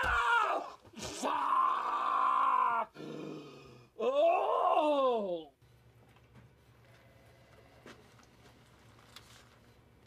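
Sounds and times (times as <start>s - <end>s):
man groaning in pain: 0.0s - 5.5s.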